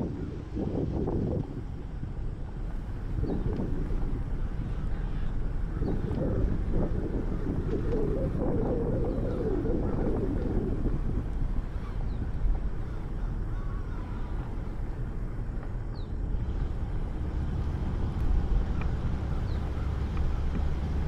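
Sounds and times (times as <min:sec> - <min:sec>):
vehicle engine running: 0:00.0 - 0:21.0
wind buffeting microphone: 0:00.0 - 0:21.0.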